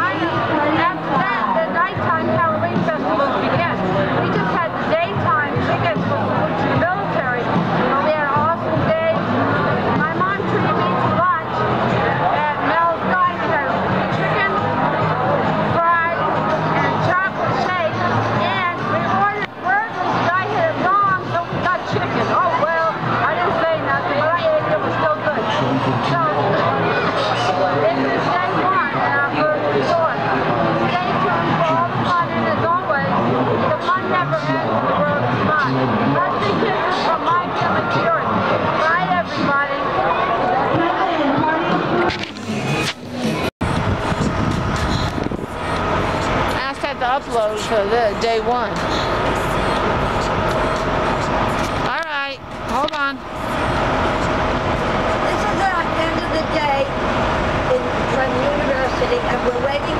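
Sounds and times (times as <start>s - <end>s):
woman talking: 0.0s - 11.7s, 12.3s - 15.0s, 15.6s - 26.6s, 27.4s - 30.2s, 30.8s - 43.5s, 45.6s - 53.2s, 55.2s - 57.0s, 57.6s - 59.9s
crowd chatter: 0.0s - 59.9s
passing cars: 0.0s - 59.9s.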